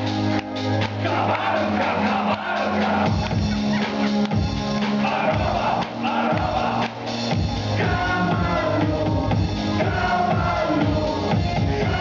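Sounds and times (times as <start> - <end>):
audience singing along: 1.0 - 3.2.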